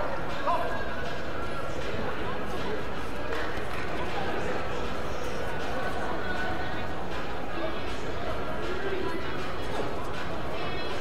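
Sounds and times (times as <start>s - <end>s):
indistinct voices in hall: 0.0s - 11.0s
steady background din: 0.0s - 11.0s.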